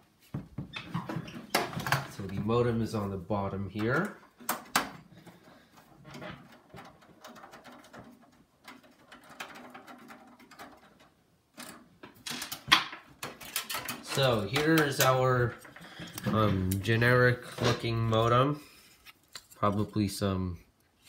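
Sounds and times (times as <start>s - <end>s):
computer parts clicking and knocking: 3.8s - 17.9s.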